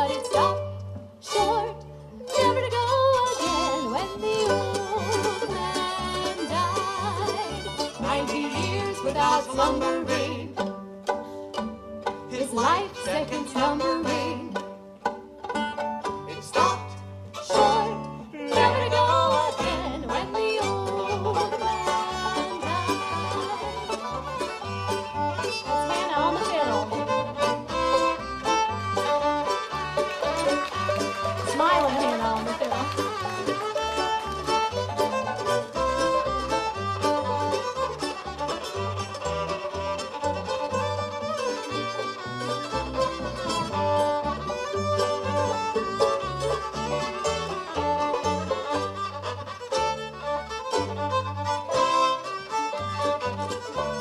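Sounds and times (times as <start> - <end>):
banjo: 0.0 - 54.0
fiddle melody: 0.0 - 54.0
mandolin: 0.0 - 54.0
plucked upright bass: 0.0 - 54.0.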